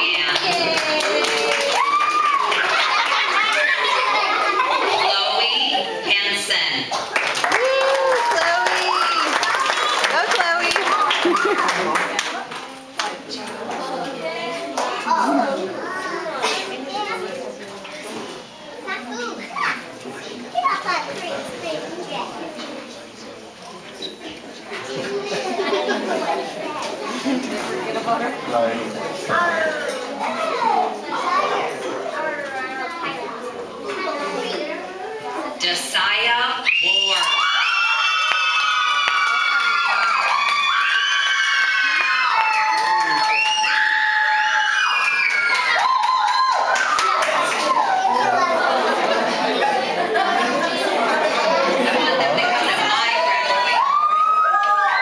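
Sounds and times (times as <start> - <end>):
people clapping: 0.0 - 4.2, 6.9 - 14.1, 14.7 - 15.3, 37.0 - 49.2, 53.8 - 55.0
children chattering: 0.0 - 55.0
children shouting and squealing: 0.8 - 6.0, 36.6 - 50.2, 51.4 - 55.0.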